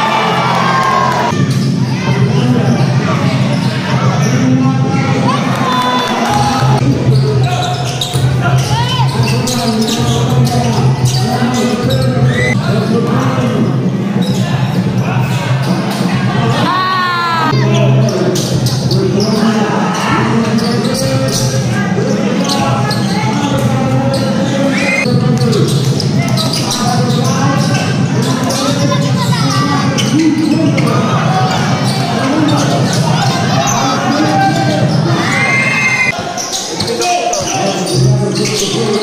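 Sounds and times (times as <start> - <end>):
crowd chattering and cheering: 0.0 - 39.0.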